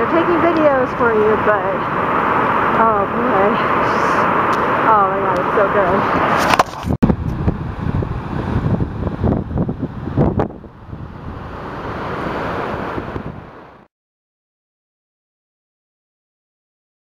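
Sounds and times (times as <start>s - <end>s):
wind buffeting microphone: 0.0s - 13.8s
smooth rushing noise: 0.0s - 13.9s.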